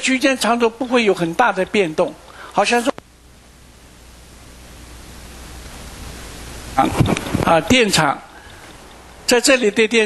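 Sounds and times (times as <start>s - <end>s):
man speaking: 0.0s - 3.0s, 6.8s - 8.4s, 9.3s - 10.0s
recording hiss: 0.0s - 10.0s
low hum: 3.0s - 7.4s.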